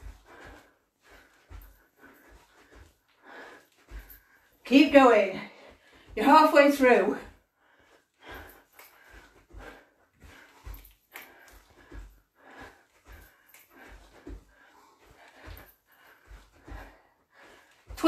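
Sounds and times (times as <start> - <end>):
feet thudding on floor: 8.3 - 18.0.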